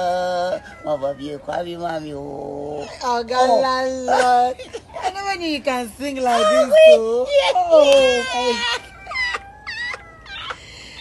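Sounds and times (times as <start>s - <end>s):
person wailing in falsetto: 0.0s - 1.3s, 6.3s - 11.0s.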